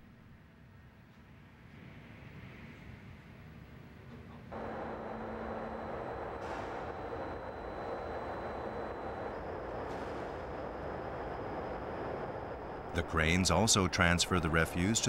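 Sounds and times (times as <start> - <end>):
crane mechanical rumble: 4.5 - 15.0
faint high whine: 4.5 - 15.0.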